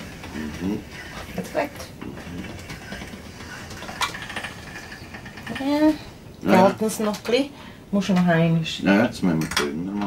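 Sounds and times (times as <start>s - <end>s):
pasta machine rollers turning: 0.0s - 7.2s.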